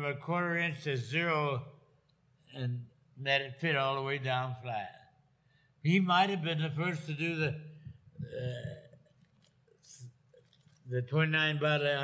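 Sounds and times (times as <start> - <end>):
man's throaty hesitation sound: 8.2 - 8.9.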